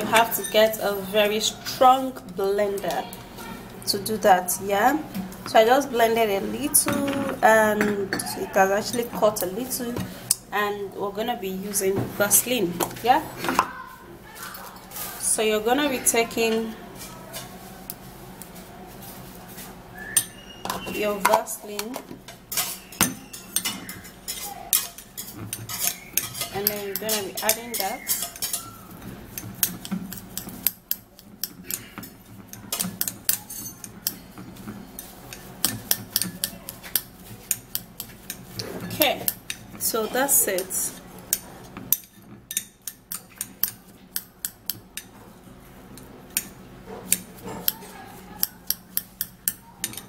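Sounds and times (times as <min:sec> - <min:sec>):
metal spoon scraping glass bowl: 0:00.0 - 0:00.8, 0:22.3 - 0:45.1, 0:46.0 - 0:50.0.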